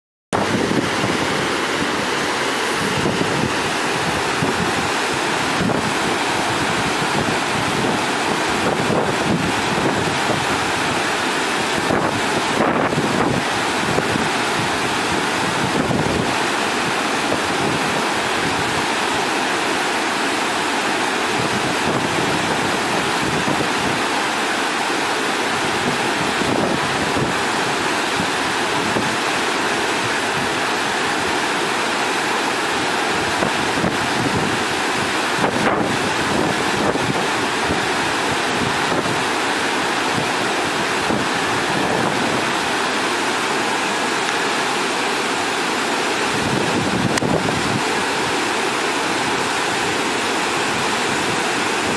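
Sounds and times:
wind buffeting microphone: 0.4 - 11.0, 40.1 - 42.7, 46.2 - 48.3
fast river rushing: 0.4 - 51.9.

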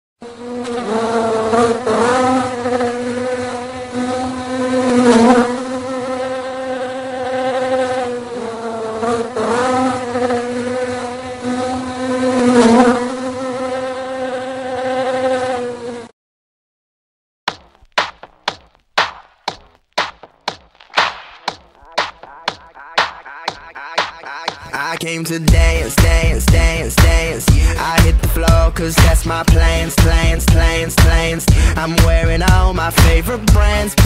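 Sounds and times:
flying insect buzzing: 0.2 - 16.1, 21.7 - 24.7.

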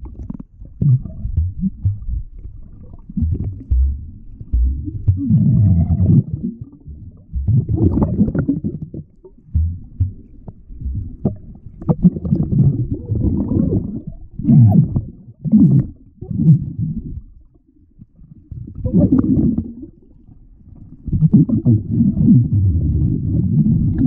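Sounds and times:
muffled underwater sloshing: 0.0 - 24.0.

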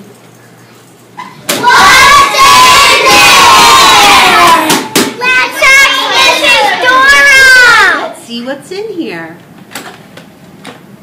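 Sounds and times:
children shouting and cheering: 1.5 - 8.2.

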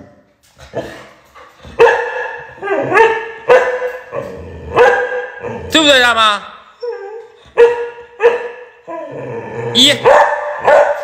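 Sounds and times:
dog barking: 1.8 - 4.0, 4.8 - 5.4, 7.6 - 8.7, 10.0 - 11.0.

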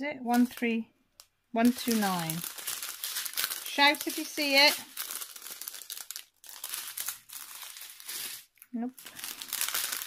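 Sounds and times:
plastic bags crinkling: 0.3 - 10.0.

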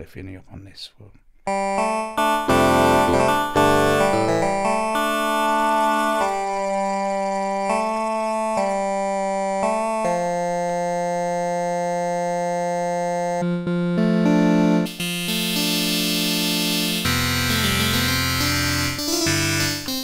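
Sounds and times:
synthesizer playing vocal chords: 1.5 - 18.5.

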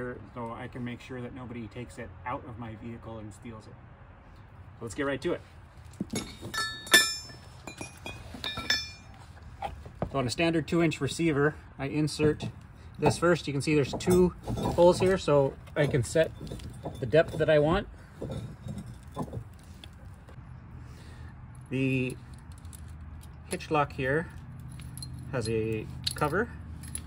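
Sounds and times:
metal hitch parts clinking: 5.8 - 10.1, 10.9 - 20.4, 21.4 - 27.0.

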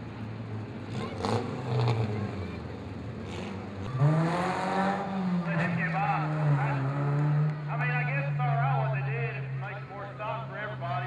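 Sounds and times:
race car engine revving: 0.7 - 11.0
people talking: 5.5 - 6.9, 7.7 - 11.0.

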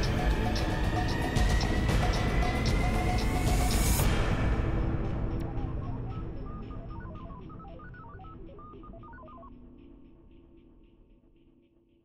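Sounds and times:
rapid electronic beeps: 0.0 - 4.1, 5.1 - 10.8
low music drone: 0.0 - 12.0.

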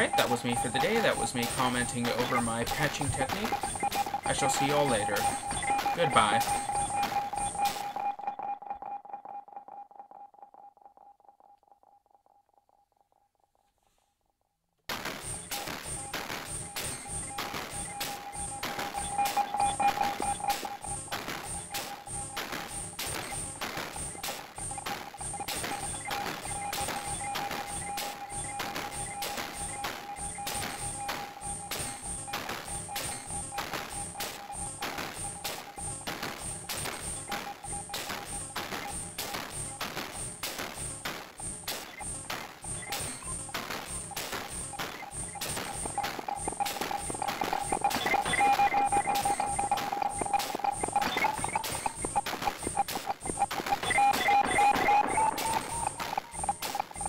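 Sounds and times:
electronic percussion pattern: 0.0 - 9.5, 15.3 - 41.1, 41.7 - 57.0
high synth ticks: 0.0 - 11.7, 15.0 - 57.0.

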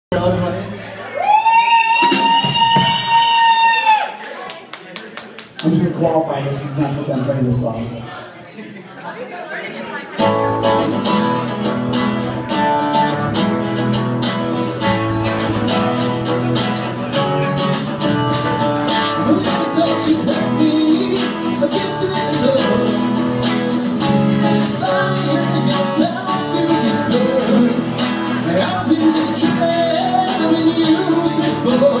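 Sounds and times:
person cheering woo: 1.0 - 4.2
scattered hand claps: 4.2 - 5.8
acoustic guitar: 10.0 - 32.0
bass guitar: 10.2 - 32.0
man singing into a microphone: 19.1 - 32.0.

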